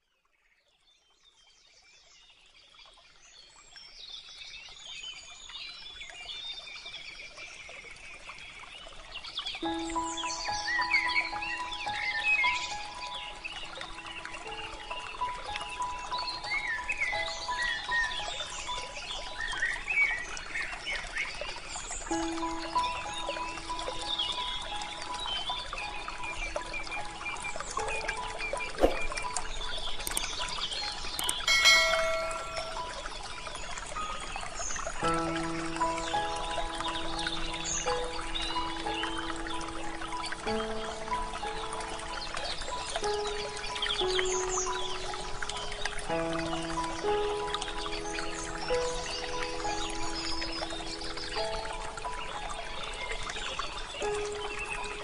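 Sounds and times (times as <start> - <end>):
slow soft melodic music: 8.8 - 55.0
short bright chime: 31.2 - 33.0.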